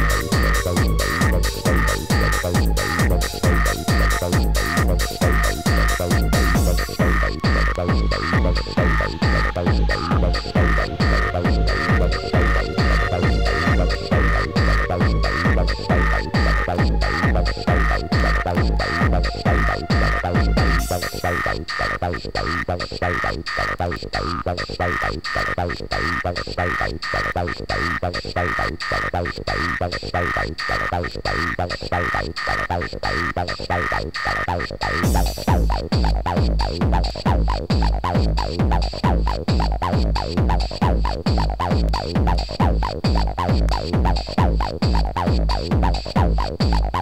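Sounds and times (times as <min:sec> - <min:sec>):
falling synth line: 0:00.0 - 0:21.3
four-on-the-floor kick drum: 0:00.0 - 0:21.3, 0:35.0 - 0:47.0
sustained high synth tones: 0:00.0 - 0:21.4
pulsing bass: 0:00.0 - 0:21.7, 0:35.0 - 0:47.0
held high synth chord: 0:10.2 - 0:17.6.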